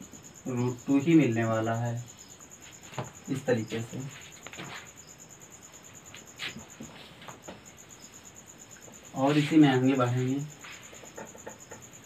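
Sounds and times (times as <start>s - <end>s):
cricket chirping: 0.0s - 12.0s
cloth wiping a whiteboard: 9.2s - 9.7s.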